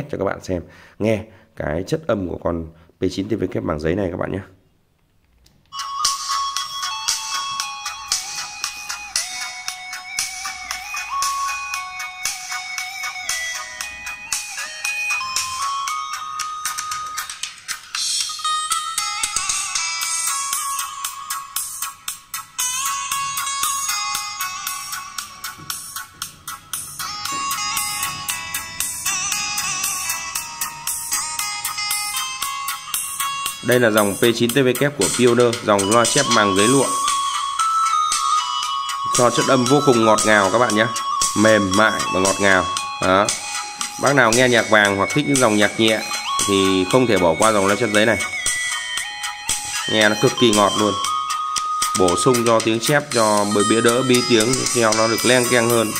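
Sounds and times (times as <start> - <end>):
music through tinny tweeter: 5.7 - 55.9.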